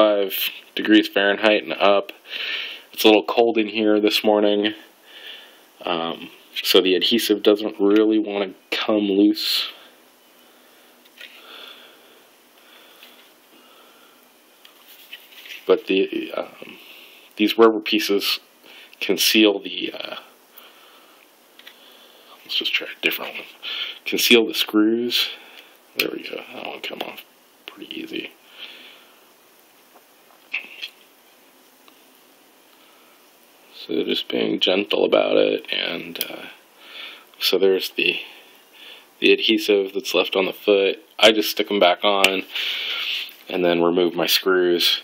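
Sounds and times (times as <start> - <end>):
faint breathing through nose: 2.2 - 3.0, 4.9 - 5.8, 9.7 - 14.3, 16.6 - 17.3, 18.6 - 19.0, 20.5 - 22.4, 23.5 - 24.0, 25.3 - 25.8, 28.4 - 29.2, 36.4 - 37.4, 38.2 - 39.2, 42.5 - 43.4.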